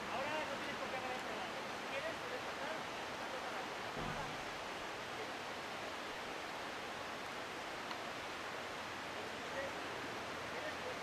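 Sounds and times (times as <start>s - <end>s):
outdoor background hiss: 0.0s - 11.0s
faint low bump: 4.0s - 4.5s.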